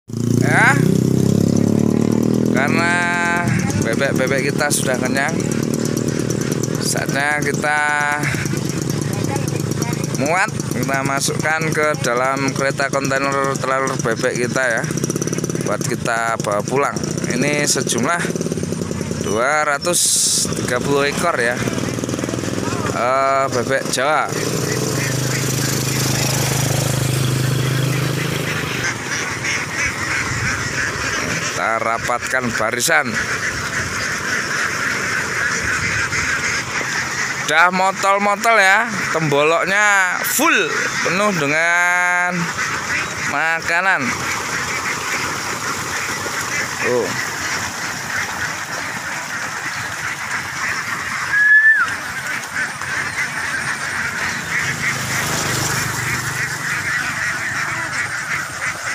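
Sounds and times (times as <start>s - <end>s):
flock of ducks quacking: 0.1s - 58.9s
small motorcycle engine idling: 0.1s - 58.9s.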